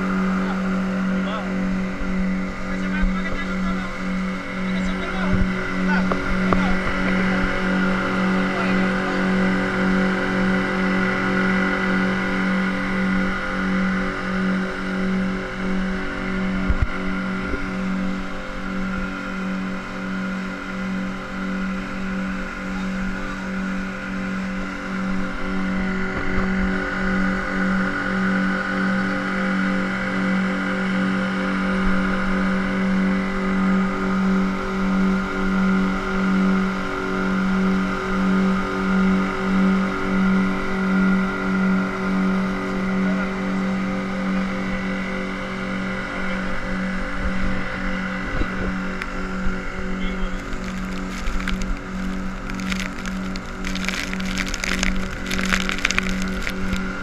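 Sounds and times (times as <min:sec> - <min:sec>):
outboard motor running: 0:00.0 - 0:57.0
wind: 0:00.0 - 0:57.0
rushing water: 0:50.4 - 0:57.0.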